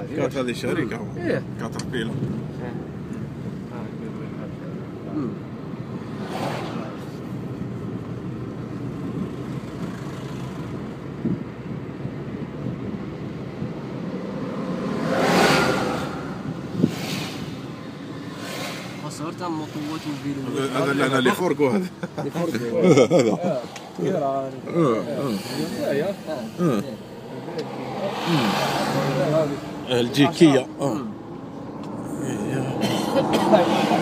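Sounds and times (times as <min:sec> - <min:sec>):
car engine and road noise: 0:00.0 - 0:34.0
rushing noise: 0:14.4 - 0:20.5.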